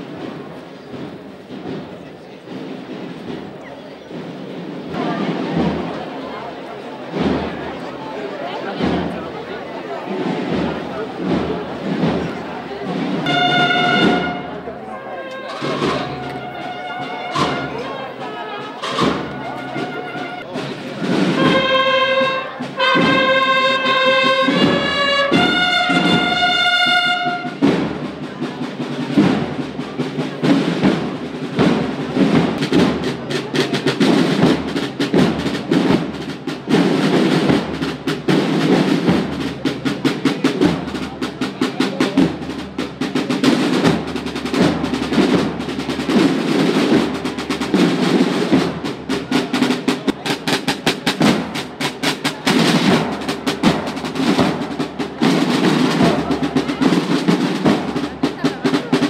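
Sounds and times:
marching snare and bass drums: 0:00.0 - 0:59.0
held brass chord: 0:13.2 - 0:20.6, 0:21.3 - 0:27.6.

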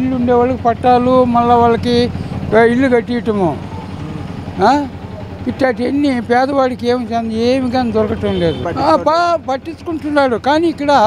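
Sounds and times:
low engine hum: 0:00.0 - 0:11.0
man speaking: 0:00.0 - 0:11.0.

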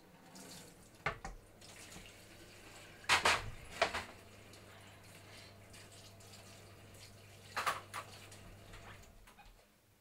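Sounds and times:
tap running into metal sink: 0:03.0 - 0:04.2, 0:07.5 - 0:09.1.

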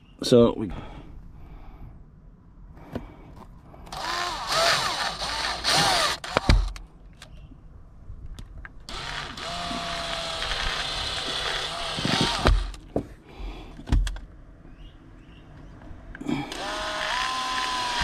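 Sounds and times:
cordless drill boring plastic: 0:03.9 - 0:06.8, 0:08.9 - 0:12.8, 0:16.5 - 0:18.0.

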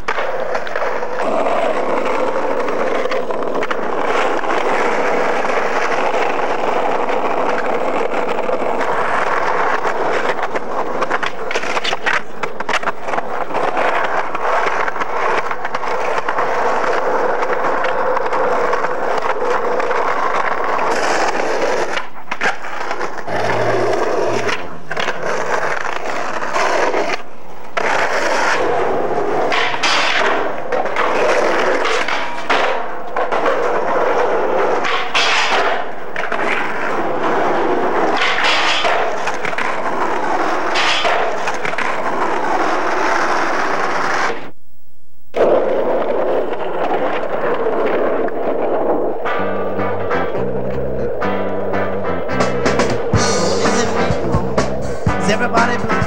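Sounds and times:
skateboard clacking on ground: 0:00.0 - 0:44.5, 0:45.4 - 0:56.0
skateboard wheels rolling on concrete: 0:00.0 - 0:44.6, 0:45.2 - 0:56.0.

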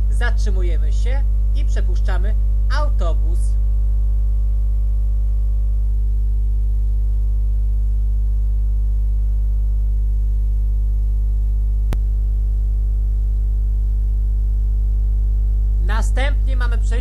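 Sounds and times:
loud electrical hum: 0:00.0 - 0:17.0.

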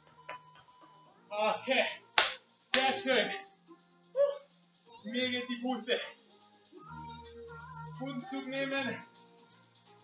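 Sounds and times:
workout music with voice: 0:00.0 - 0:10.0
sharp clap-like hit: 0:02.2 - 0:03.0.

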